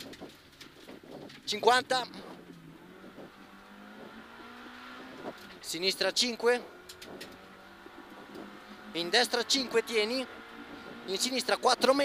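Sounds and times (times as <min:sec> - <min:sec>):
car engine from inside cabin: 0:02.2 - 0:11.6.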